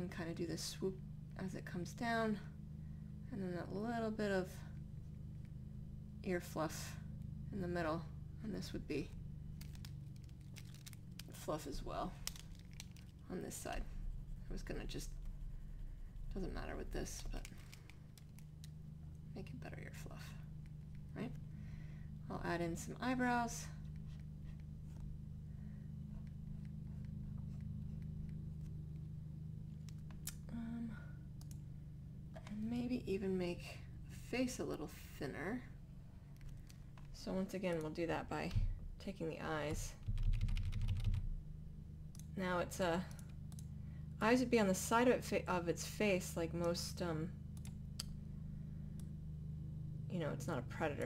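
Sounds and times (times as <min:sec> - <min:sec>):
low electrical hum: 0:00.0 - 0:51.0.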